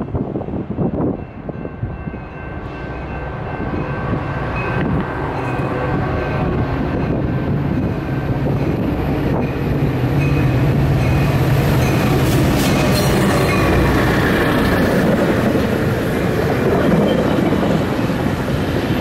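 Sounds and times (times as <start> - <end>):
diesel locomotive engine drone: 0.0 - 19.0.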